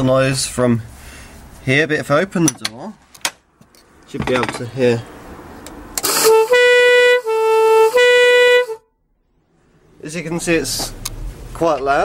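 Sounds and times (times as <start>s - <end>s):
two-tone air horns: 6.0s - 8.9s.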